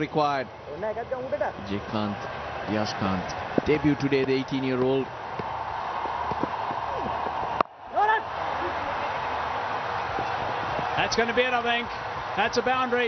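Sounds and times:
televised cricket match background noise: 0.0 - 13.0.

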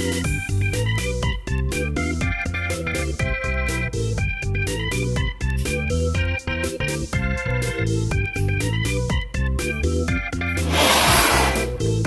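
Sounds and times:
organ-like keyboard music: 0.0 - 11.0
loud rush of gas igniting: 10.6 - 11.8.

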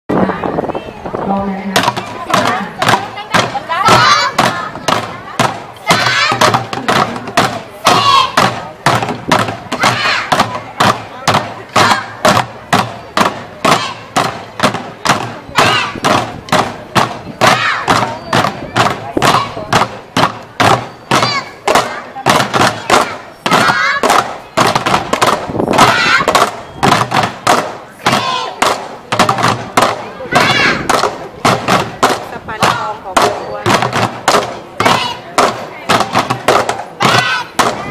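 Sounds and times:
sticks beating plastic bucket drums: 1.7 - 37.9
voices shouting: 1.8 - 37.9.

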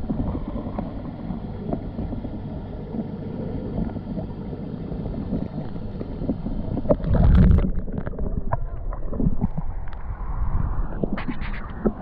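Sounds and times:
muffled underwater water movement: 0.0 - 12.0.

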